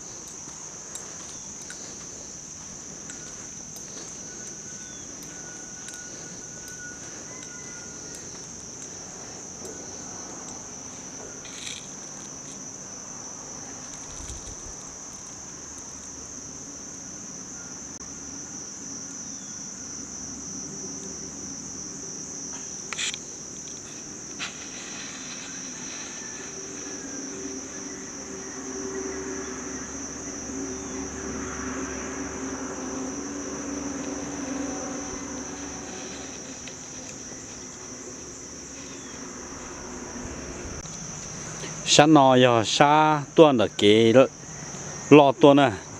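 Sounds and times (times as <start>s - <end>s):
high-pitched insect drone: 0.0s - 45.9s.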